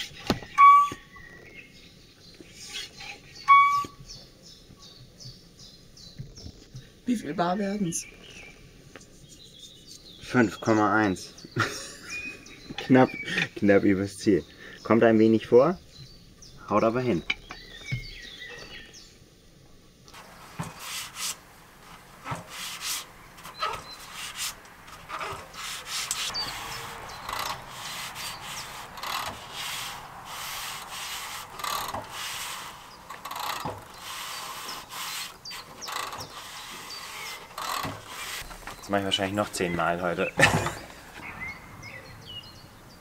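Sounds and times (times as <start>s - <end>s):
hands rubbing and scraping bicycle: 9.0s - 10.2s, 20.1s - 41.3s.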